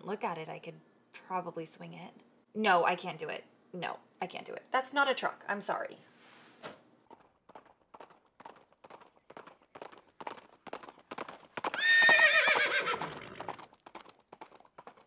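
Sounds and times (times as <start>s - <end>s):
horse hooves clip-clopping: 7.0s - 15.0s
horse whinnying: 11.7s - 13.6s.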